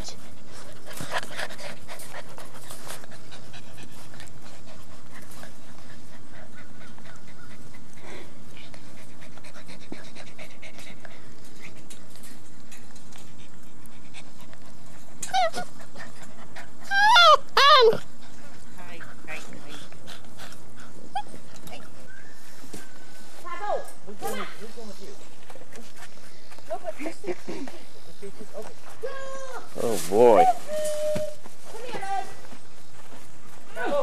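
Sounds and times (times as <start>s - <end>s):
puppies panting: 0.0s - 23.2s, 24.3s - 29.0s
puppy high whines: 15.2s - 15.8s, 16.8s - 18.1s, 30.3s - 31.4s.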